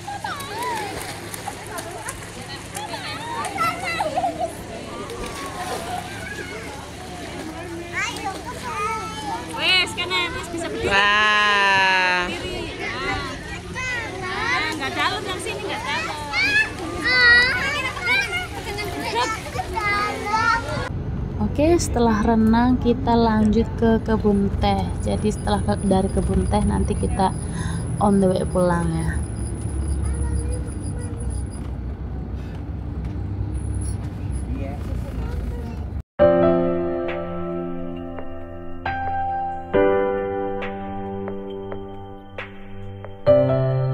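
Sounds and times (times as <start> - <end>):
children chattering and calling out: 0.0 - 20.9, 29.7 - 32.3
children playing in water: 0.0 - 20.9, 28.6 - 32.2
car interior road and engine rumble: 20.9 - 36.0.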